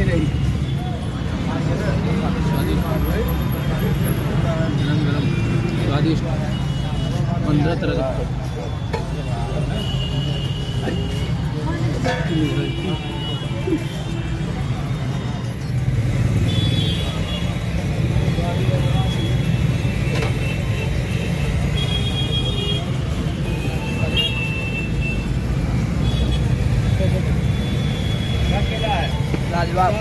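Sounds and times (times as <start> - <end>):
crowd voices: 0.0 - 30.0
traffic rumble: 0.0 - 30.0.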